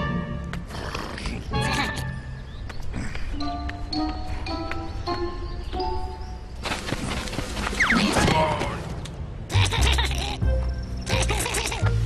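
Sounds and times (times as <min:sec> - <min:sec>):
cartoon soundtrack music: 0:09.5 - 0:12.0.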